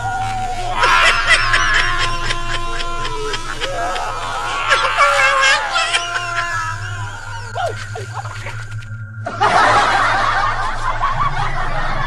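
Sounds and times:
people laughing loudly: 0.0s - 8.6s, 9.3s - 12.0s
low steady hum: 0.0s - 12.0s.

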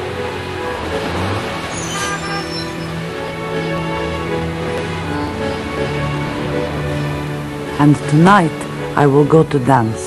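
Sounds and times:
background music: 0.0s - 10.0s
vehicles passing: 0.0s - 10.0s.

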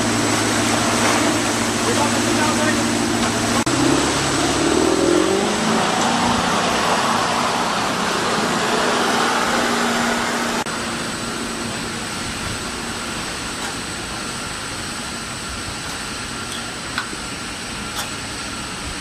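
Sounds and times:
boat engine revving: 0.0s - 16.4s
rush of water and wind: 0.0s - 19.0s.

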